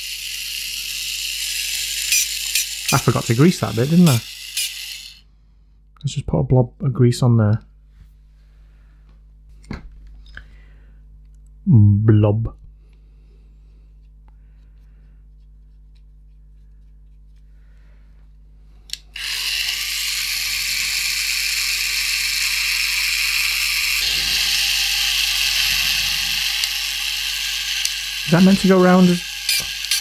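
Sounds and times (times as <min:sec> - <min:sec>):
toy motor and gearbox running: 0:00.0 - 0:05.2, 0:19.0 - 0:30.0.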